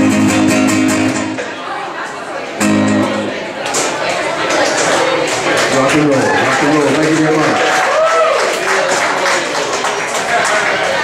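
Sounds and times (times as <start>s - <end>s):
audience clapping: 4.4s - 11.0s
man speaking into microphone: 5.7s - 7.6s.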